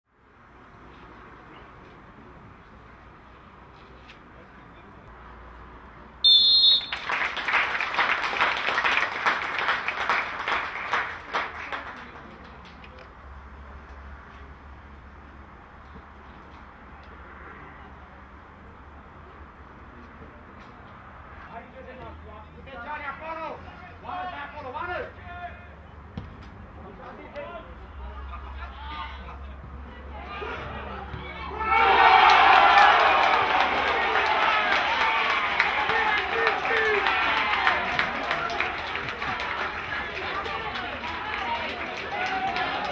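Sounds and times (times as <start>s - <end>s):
referee's whistle blast: 6.2s - 7.0s
people clapping: 6.7s - 13.2s, 31.7s - 42.9s.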